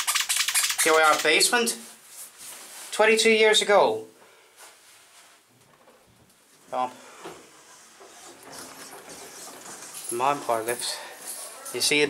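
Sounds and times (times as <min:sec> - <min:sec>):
elevator doors sliding open: 0:07.4 - 0:10.7.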